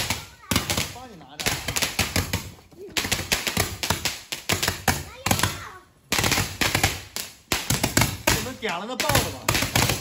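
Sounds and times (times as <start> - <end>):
firecrackers banging: 0.0 - 10.0.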